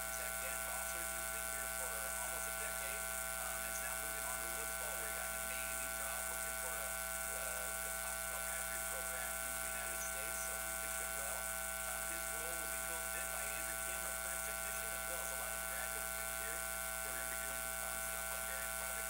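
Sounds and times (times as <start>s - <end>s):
electrical buzz: 0.0s - 19.0s
man talking faintly: 0.0s - 19.0s.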